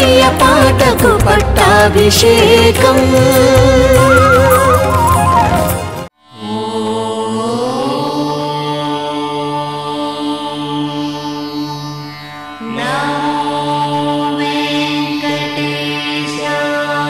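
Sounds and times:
devotional chanting: 0.0s - 4.8s, 6.3s - 12.0s, 12.6s - 17.0s.

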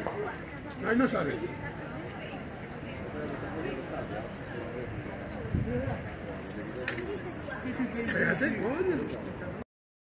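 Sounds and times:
horse tack jingling: 6.4s - 9.3s.

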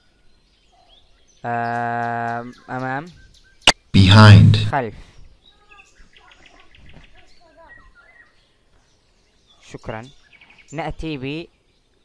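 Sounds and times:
faint bird chirps and twittering: 0.0s - 3.8s, 4.8s - 12.0s.

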